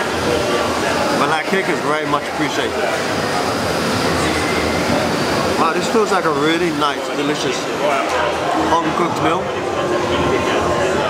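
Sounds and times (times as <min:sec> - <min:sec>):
steady rumble and hiss: 0:00.0 - 0:11.0.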